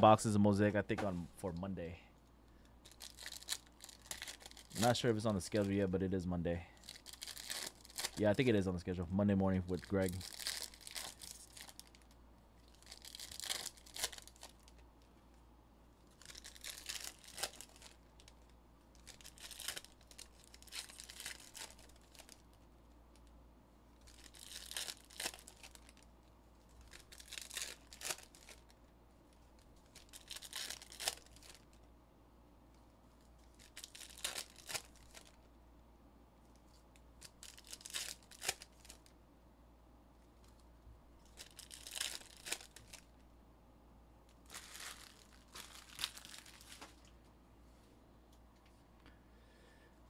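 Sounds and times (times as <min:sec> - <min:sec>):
wrapper crinkling: 0:02.8 - 0:05.8, 0:06.8 - 0:09.0, 0:09.6 - 0:14.8, 0:16.1 - 0:23.3, 0:24.0 - 0:31.8, 0:33.3 - 0:35.4, 0:36.6 - 0:39.1, 0:41.2 - 0:43.1, 0:44.4 - 0:47.1
foil card packs tearing open: 0:06.8 - 0:08.6, 0:12.7 - 0:14.6, 0:16.2 - 0:18.0, 0:24.0 - 0:26.0, 0:26.8 - 0:28.7, 0:30.0 - 0:31.6, 0:33.6 - 0:35.3, 0:37.3 - 0:39.0, 0:41.3 - 0:43.0, 0:44.5 - 0:47.0.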